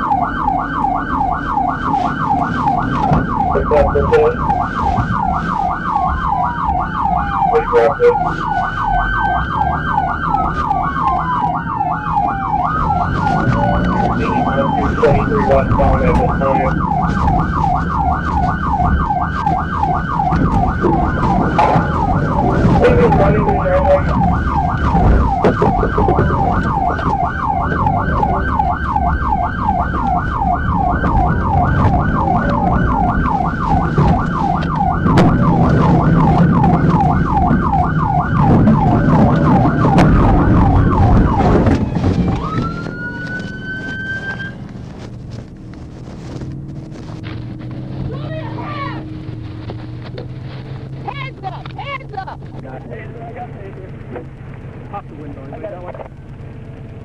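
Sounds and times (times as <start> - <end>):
police siren yelping: 0.0 - 44.8, 46.3 - 49.7
engine and road noise: 0.0 - 57.0.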